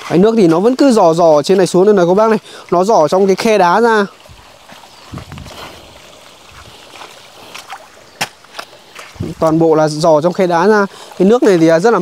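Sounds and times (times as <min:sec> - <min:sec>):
water trickling from rock: 0:00.0 - 0:12.0.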